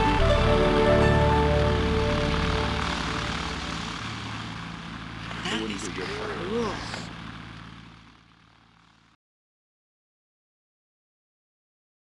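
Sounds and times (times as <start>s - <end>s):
music: 0.0s - 4.4s
propeller engine drone: 0.0s - 9.2s
person speaking: 5.3s - 7.2s.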